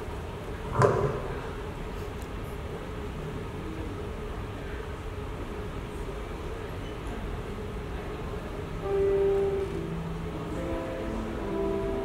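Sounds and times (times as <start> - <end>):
low hall hum: 0.0 - 12.0
instrumental backing track: 8.8 - 12.0.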